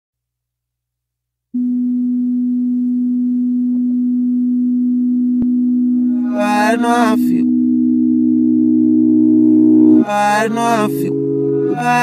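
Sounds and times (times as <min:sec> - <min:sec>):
low sustained synth tone: 0:01.6 - 0:12.0.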